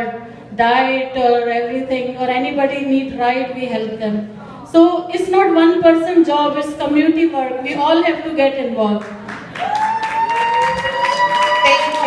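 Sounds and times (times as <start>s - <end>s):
audience applauding: 9.0s - 12.0s.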